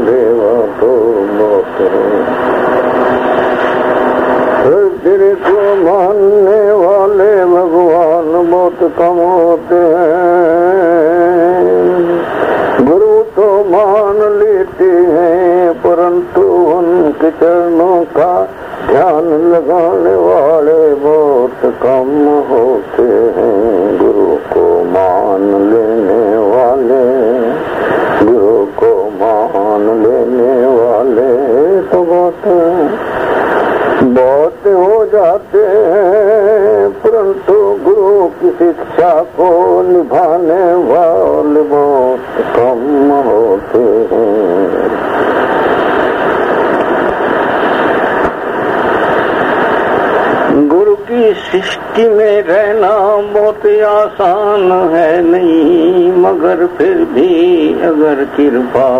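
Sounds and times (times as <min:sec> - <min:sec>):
man singing with vibrato: 0:00.0 - 0:58.9.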